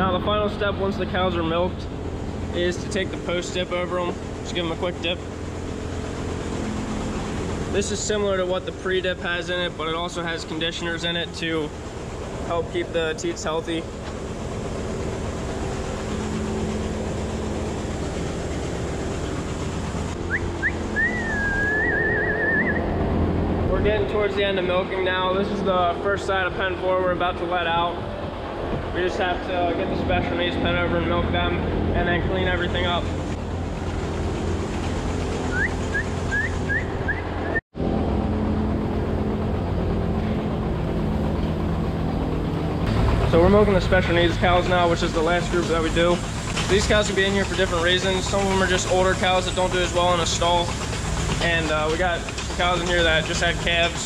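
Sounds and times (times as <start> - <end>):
cooling fan running: 0.0 - 54.0
milking machinery hum: 0.0 - 54.0
high whistle chirps: 20.2 - 23.0, 35.5 - 37.6.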